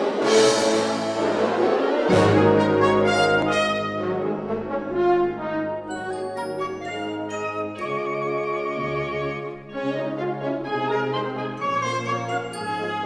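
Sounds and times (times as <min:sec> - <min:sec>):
military brass band playing: 0:00.0 - 0:13.0.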